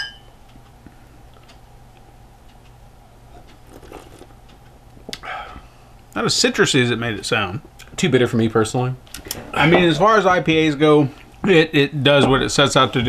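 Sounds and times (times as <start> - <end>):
beer glasses clinking: 0.0 - 0.3
steady low hum: 0.1 - 13.0
faint sipping: 3.3 - 4.4.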